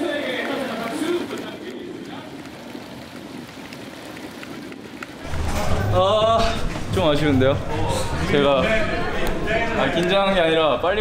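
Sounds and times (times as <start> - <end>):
stadium crowd noise: 0.0 - 3.0, 5.2 - 11.0.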